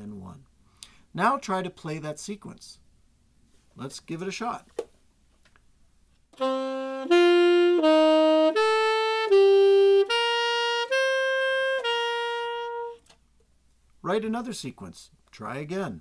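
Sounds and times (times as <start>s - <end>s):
saxophone held notes: 6.4s - 13.1s.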